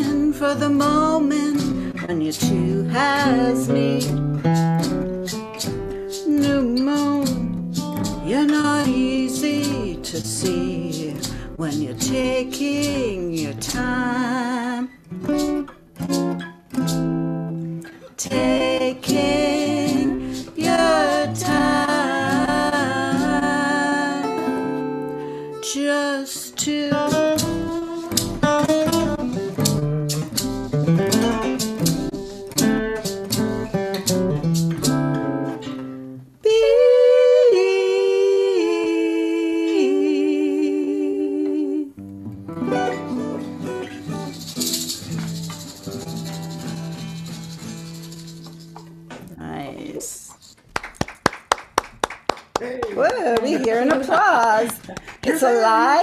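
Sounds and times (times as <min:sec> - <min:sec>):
woman singing folk song: 0:00.0 - 0:15.6, 0:17.8 - 0:29.6, 0:36.4 - 0:42.1, 0:53.0 - 0:56.0
acoustic guitars: 0:00.0 - 0:56.0
shaker rattle: 0:01.5 - 0:14.0, 0:18.3 - 0:23.4, 0:43.6 - 0:49.0, 0:50.3 - 0:50.6.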